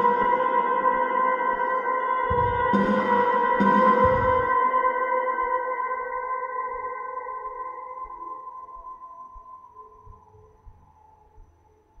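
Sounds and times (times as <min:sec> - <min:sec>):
ambient electric guitar note: 0:02.2 - 0:04.8.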